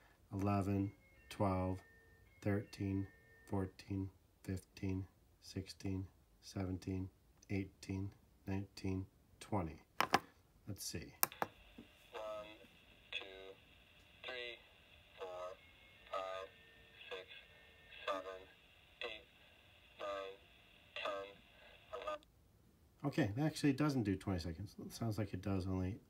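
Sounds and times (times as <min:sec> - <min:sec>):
recorded man's voice counting: 0:00.3 - 0:01.8, 0:02.4 - 0:09.9, 0:10.6 - 0:11.3, 0:23.0 - 0:26.0.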